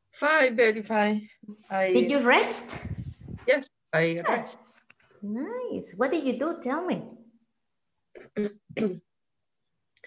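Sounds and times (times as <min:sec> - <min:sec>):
person clearing throat: 0:08.2 - 0:09.2.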